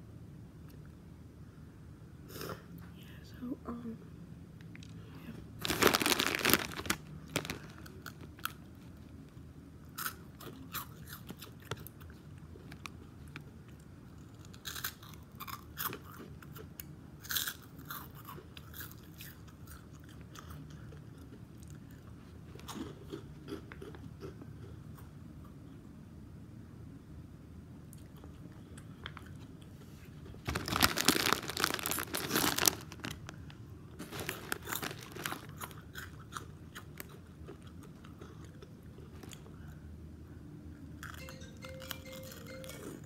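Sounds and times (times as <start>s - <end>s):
chewing crunchy food: 5.6s - 9.1s, 9.8s - 25.7s, 27.9s - 39.8s.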